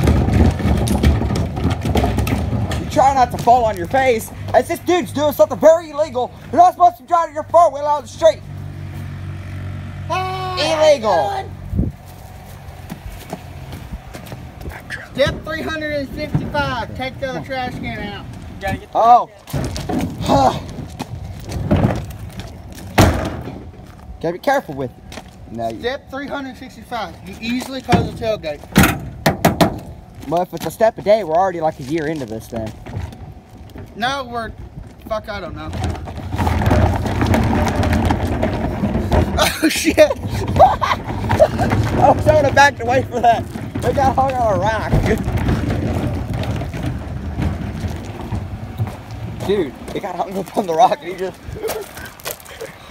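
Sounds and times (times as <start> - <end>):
loose rattles and knocks: 0.0 - 4.0, 27.9 - 30.1
tires on gravel: 0.0 - 52.9
truck engine running: 0.0 - 52.9.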